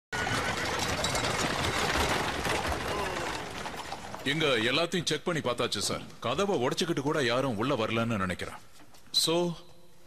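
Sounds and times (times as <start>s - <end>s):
horses' hooves on cobblestones: 0.1s - 4.9s
carriage wheels on cobblestones: 0.1s - 6.0s.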